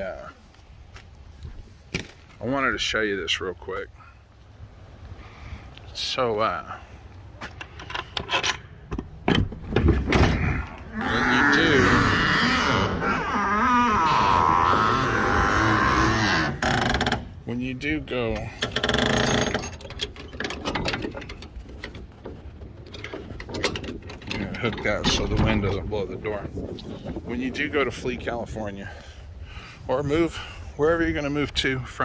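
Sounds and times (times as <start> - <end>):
metal hook clinking and rattling: 18.3 - 21.6
metal door latch clicking and rattling: 18.6 - 22.0, 22.9 - 25.7
wind rumble on microphone: 21.3 - 31.7.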